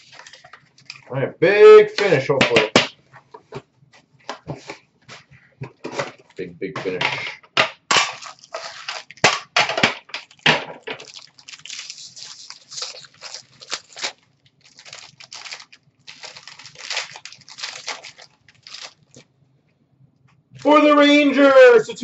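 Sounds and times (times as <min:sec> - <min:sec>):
wrapper crinkling and tearing: 0:00.0 - 0:01.1, 0:07.9 - 0:19.3.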